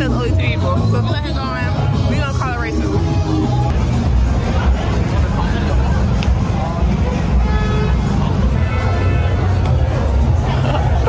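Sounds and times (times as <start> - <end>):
club music bass: 0.0 - 11.0
crowd chatter: 0.0 - 11.0
passing cars: 0.0 - 11.0.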